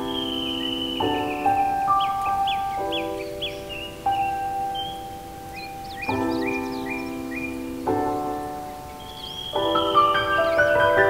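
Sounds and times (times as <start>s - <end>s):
birdsong of high chirps: 0.0s - 11.0s
piano playing slow chords: 0.0s - 11.0s.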